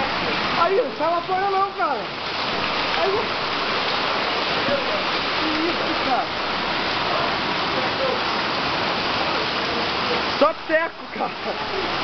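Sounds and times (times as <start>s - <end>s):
hail and heavy rain: 0.0s - 12.0s.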